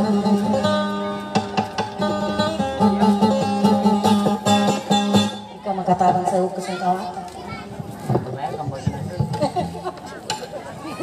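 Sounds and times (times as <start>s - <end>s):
people talking: 2.2s - 11.0s
children's voices: 6.4s - 9.0s, 10.1s - 11.0s.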